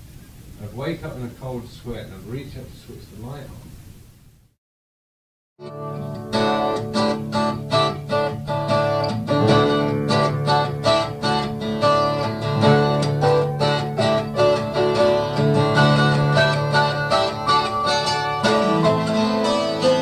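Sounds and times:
acoustic guitar strumming: 5.6 - 20.0.

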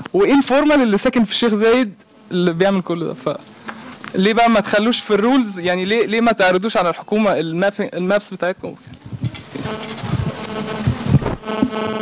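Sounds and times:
electrical buzz: 0.0 - 6.7, 9.0 - 12.0
microphone handling thumps: 8.7 - 12.0.

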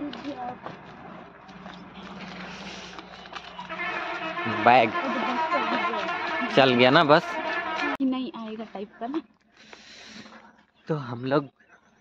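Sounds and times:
distant vehicle engine hum: 0.0 - 10.3.

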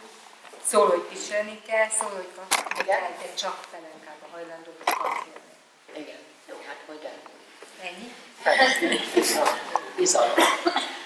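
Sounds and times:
woman talking: 0.6 - 10.8.

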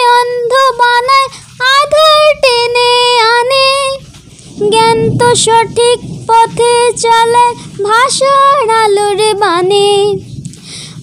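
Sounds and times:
boy singing unaccompanied: 0.0 - 10.2.

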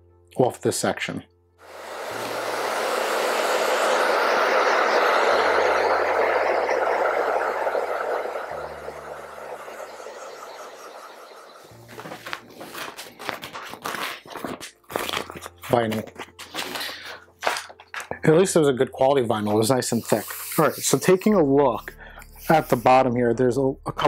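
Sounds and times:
hair dryer blowing: 1.6 - 12.2
vinyl sheet crinkling: 11.8 - 17.9.

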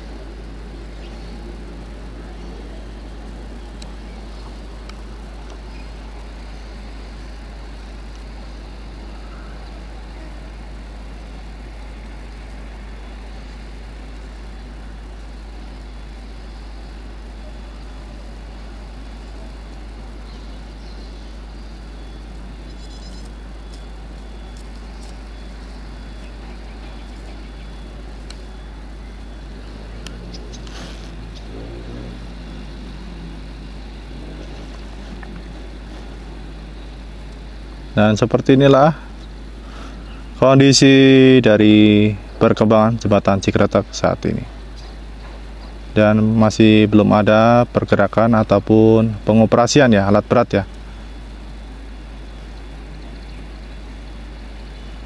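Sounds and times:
constant low hum: 0.0 - 55.0
faint irregular low sound: 0.0 - 55.0
faint clicks: 3.7 - 5.6, 28.2 - 28.5, 30.0 - 32.2.

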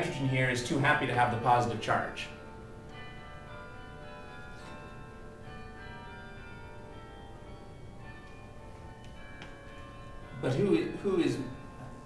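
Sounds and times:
faint bells ringing: 0.0 - 12.0.

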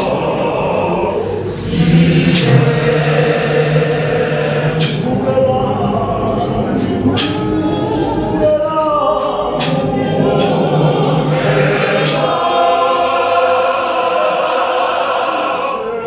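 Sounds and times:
choir singing in harmony: 0.0 - 16.0.

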